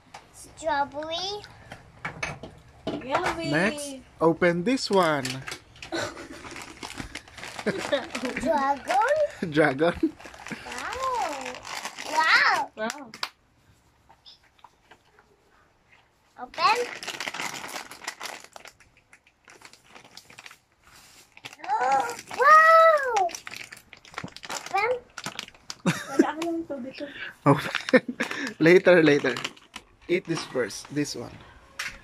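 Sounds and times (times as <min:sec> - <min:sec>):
plastic snack bag crinkling: 0:04.7 - 0:12.8, 0:16.6 - 0:26.5, 0:27.6 - 0:31.3
toddler babbling: 0:21.6 - 0:23.3.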